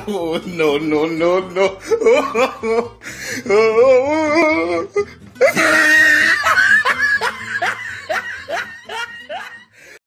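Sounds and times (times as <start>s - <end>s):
person snickering: 5.4s - 9.7s.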